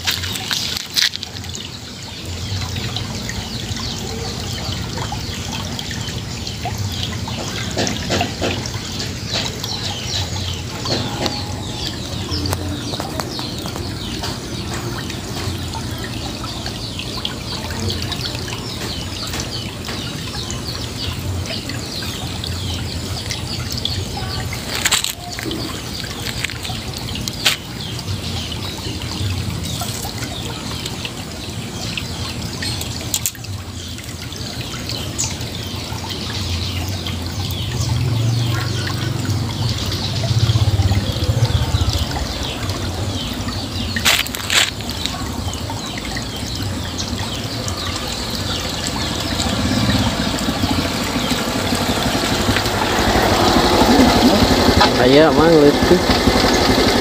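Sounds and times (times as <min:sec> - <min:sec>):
water trickling in a ditch: 0:00.0 - 0:57.0.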